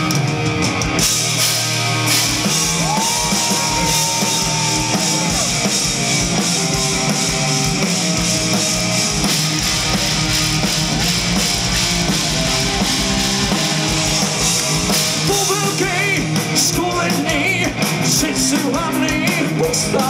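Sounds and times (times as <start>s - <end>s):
drum kit: 0.0s - 20.0s
electric guitars: 0.0s - 20.0s
person singing: 15.2s - 20.0s.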